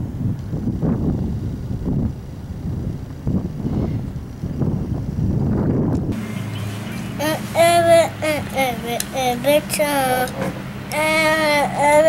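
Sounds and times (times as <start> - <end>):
steady low hum: 0.0 - 12.0
child making drawn-out sounds: 7.2 - 12.0.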